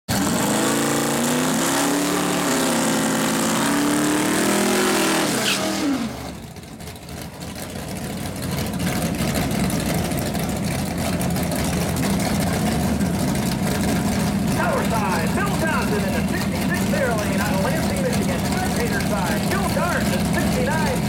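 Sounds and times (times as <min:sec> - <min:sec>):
drag car engine revving: 0:00.1 - 0:21.0
lower steady engine sound: 0:05.8 - 0:21.0.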